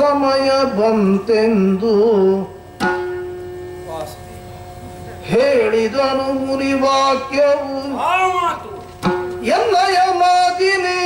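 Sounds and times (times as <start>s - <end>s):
steady drone on one note: 0.0s - 11.0s.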